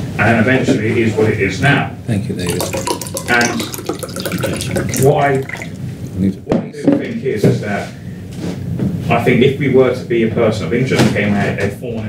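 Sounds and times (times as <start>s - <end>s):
person speaking: 2.2s - 6.6s
water pouring into glass: 2.3s - 6.4s.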